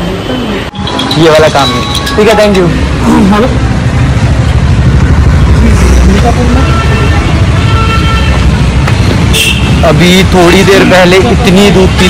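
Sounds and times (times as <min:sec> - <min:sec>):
passing cars and motorbikes: 0:00.0 - 0:12.0.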